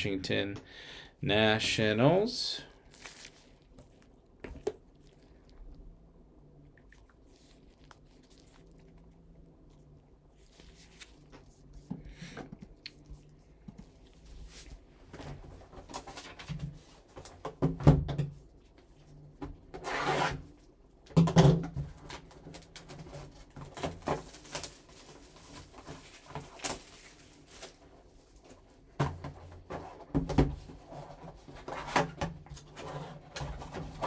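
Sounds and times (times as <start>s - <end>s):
rustling scrape: 10.3s - 12.3s, 19.8s - 20.4s.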